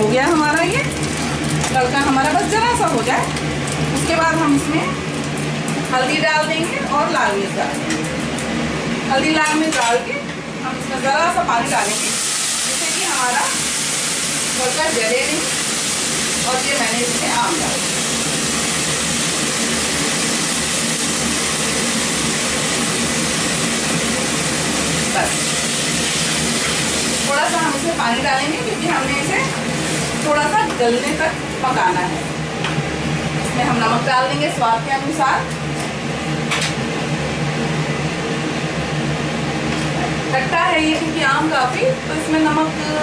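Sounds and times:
exhaust fan humming: 0.0s - 43.0s
food sizzling in hot oil: 11.6s - 32.1s.

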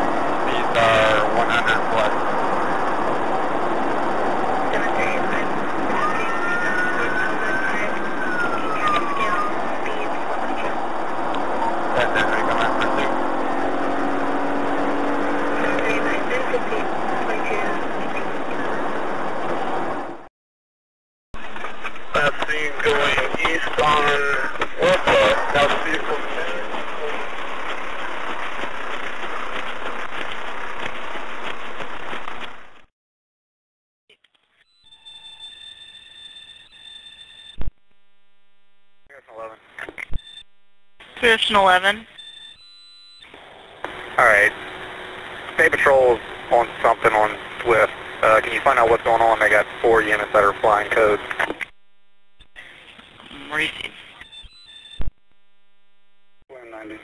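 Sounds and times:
dashcam recording noise: 0.0s - 20.2s, 21.4s - 32.9s, 37.5s - 57.0s
person speaking over radio: 0.5s - 2.2s, 12.0s - 13.2s, 22.1s - 27.2s, 44.2s - 44.5s, 45.6s - 51.6s, 53.3s - 54.2s
radio chatter: 0.5s - 3.6s, 4.6s - 13.2s, 15.5s - 19.0s, 21.4s - 27.5s, 41.0s - 42.2s, 43.2s - 51.8s, 52.4s - 55.1s
electronic hum tones: 34.7s - 39.1s, 40.0s - 44.9s, 45.6s - 52.6s, 53.4s - 56.4s
radio squelch burst: 45.4s - 56.2s
radio transmission click: 48.6s - 56.4s.

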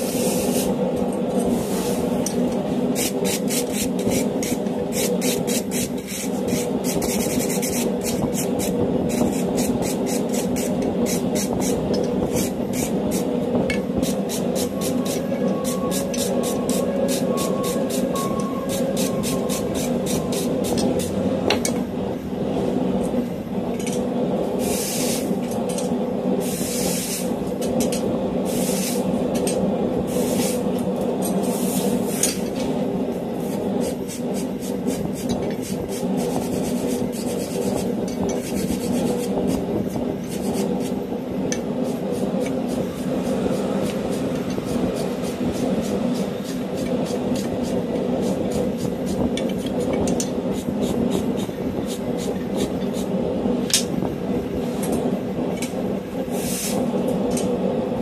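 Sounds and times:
gas forge running: 0.0s - 58.0s.

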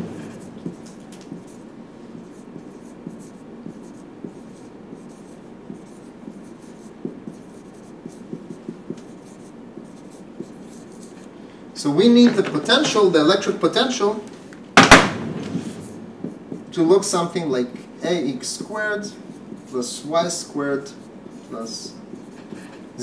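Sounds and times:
marker writing on a whiteboard: 0.0s - 11.4s, 15.8s - 23.0s
low room hum: 0.0s - 23.0s.

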